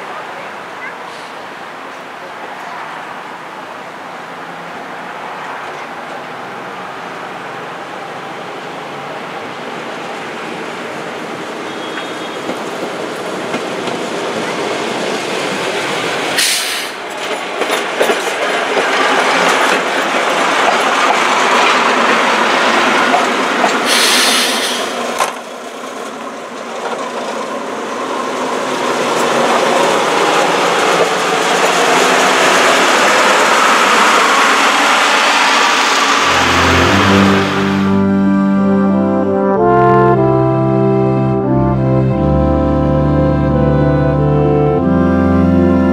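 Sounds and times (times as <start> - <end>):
diesel railcar engine: 5.2 - 45.8
train wheels on rails: 8.5 - 37.6
brass music sting: 36.2 - 45.9.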